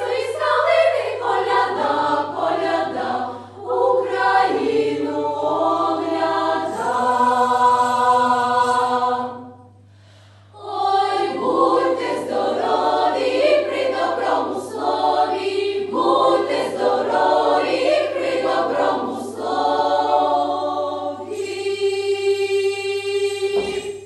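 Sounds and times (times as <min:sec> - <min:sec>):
children's choir singing a carol: 0:00.0 - 0:09.8, 0:10.5 - 0:24.0.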